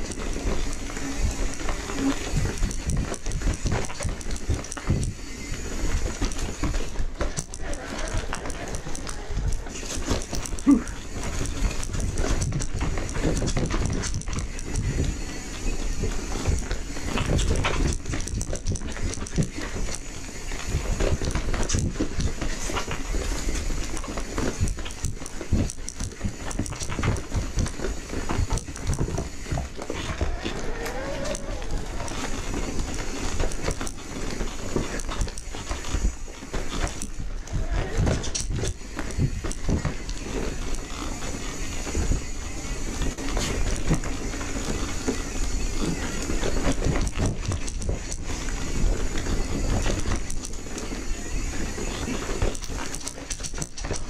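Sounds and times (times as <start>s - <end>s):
bike rattling over rocks: 0.0s - 54.0s
tyre noise: 0.0s - 54.0s.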